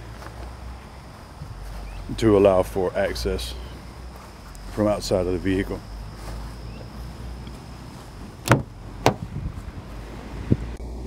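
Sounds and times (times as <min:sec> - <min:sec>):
car door latch click: 0:08.4 - 0:09.2
small knock: 0:08.5 - 0:09.2.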